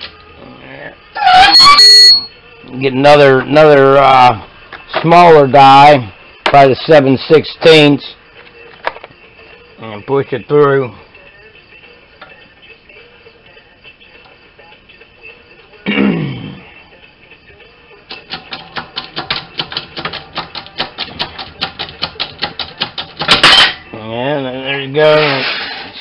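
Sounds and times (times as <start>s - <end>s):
punch cracking through coin: 18.1s - 23.8s.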